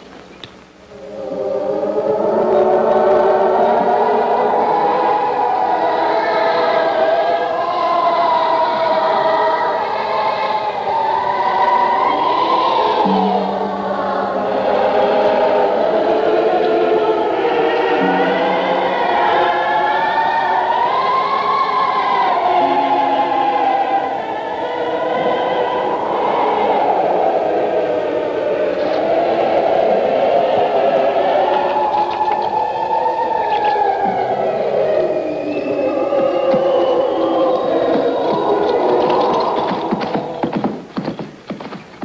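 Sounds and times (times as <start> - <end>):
choir singing sustained chords: 0.0 - 41.4.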